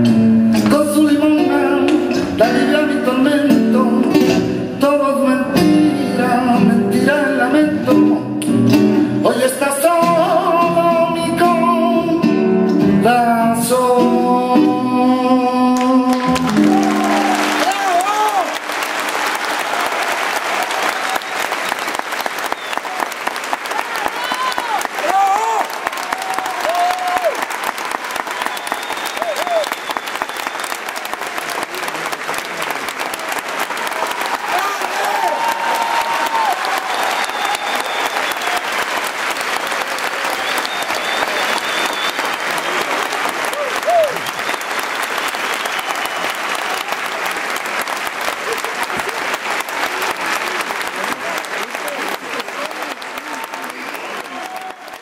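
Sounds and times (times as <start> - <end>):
audience applauding: 15.7 - 55.0.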